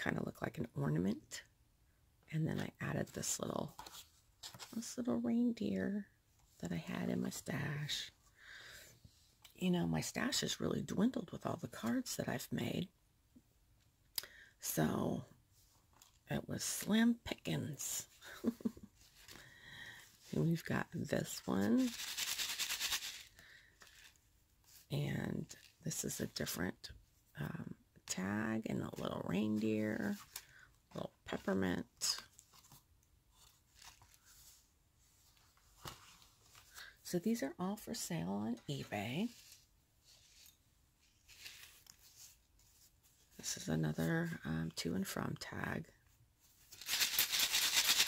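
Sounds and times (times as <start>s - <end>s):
sequins rattling in shaker card: 21.3s - 24.1s, 46.7s - 48.0s.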